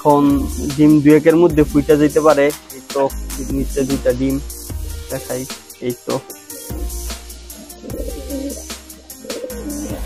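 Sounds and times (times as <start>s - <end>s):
background music with bass line: 0.0s - 10.0s
pigeon cooing: 6.3s - 10.0s.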